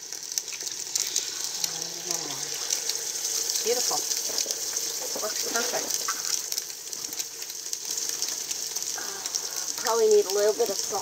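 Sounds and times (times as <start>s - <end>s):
eggs sizzling in pans: 0.0s - 11.0s.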